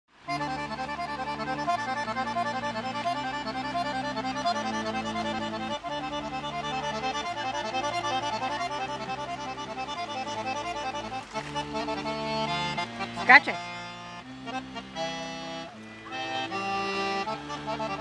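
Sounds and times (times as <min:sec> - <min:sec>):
accordion melody with bass chords: 0:00.1 - 0:18.0.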